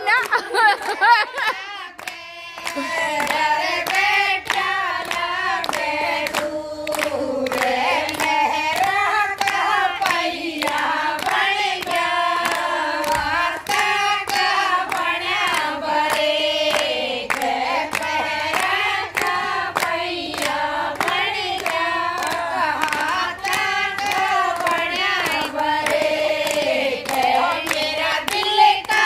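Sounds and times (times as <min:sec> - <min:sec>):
hand claps: 0:00.0 - 0:29.0
women singing together: 0:00.0 - 0:29.0.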